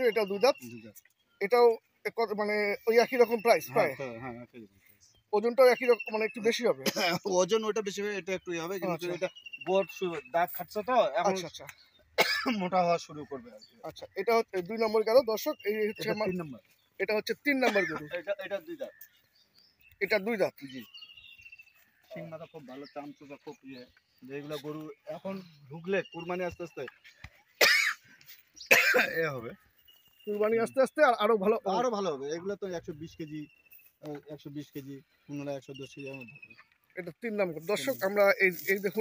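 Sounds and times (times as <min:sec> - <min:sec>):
men talking: 0:00.0 - 0:39.0
harsh cough: 0:06.8 - 0:07.3, 0:12.2 - 0:12.7, 0:17.6 - 0:18.1, 0:27.6 - 0:28.0, 0:28.7 - 0:29.3
person speaking: 0:37.1 - 0:39.0.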